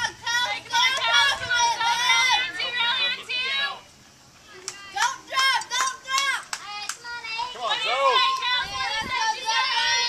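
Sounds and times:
girls shouting and chanting cheers: 0.0 - 3.9, 4.5 - 10.0
sharp hand claps: 5.6 - 7.0.

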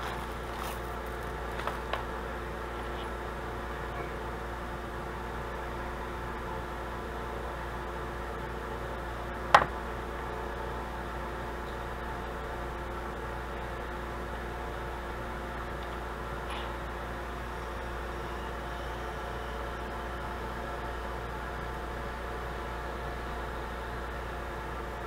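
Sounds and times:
mechanical room hum: 0.0 - 25.0.

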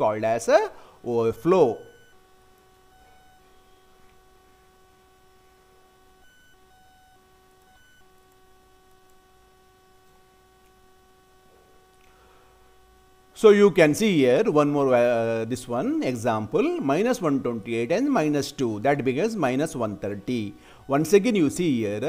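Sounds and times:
faint electrical hum: 0.0 - 22.0.

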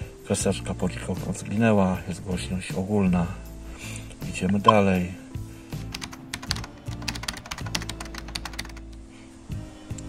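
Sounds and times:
background music: 0.0 - 10.0
rapid typing-like clicking: 5.9 - 8.8.

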